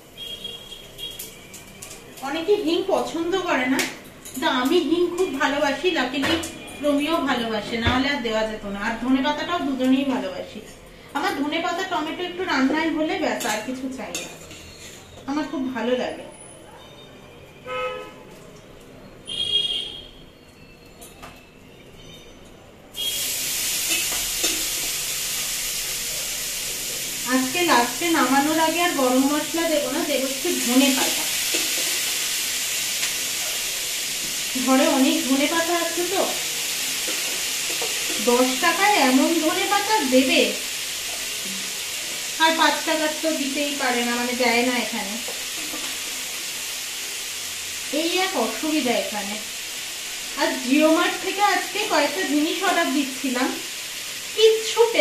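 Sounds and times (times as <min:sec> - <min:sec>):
food sizzling in a wok: 0:00.0 - 0:16.6, 0:22.9 - 0:55.0
woman talking: 0:02.2 - 0:14.2, 0:50.4 - 0:53.6, 0:54.4 - 0:55.0.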